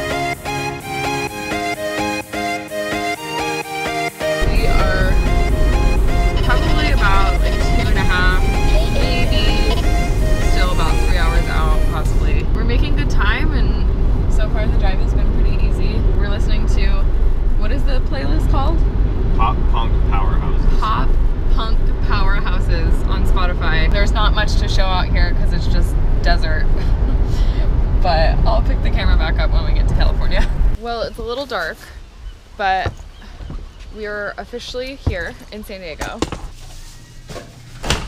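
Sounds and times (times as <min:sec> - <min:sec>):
road and wind noise in car: 0:04.4 - 0:36.6.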